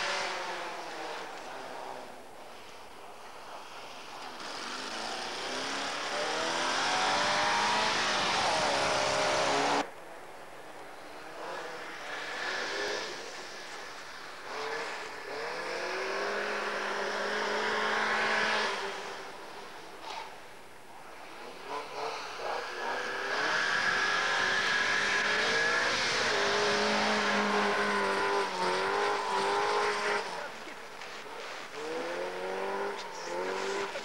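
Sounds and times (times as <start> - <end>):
rally car engines revving high: 0.0 - 9.9, 10.5 - 34.0.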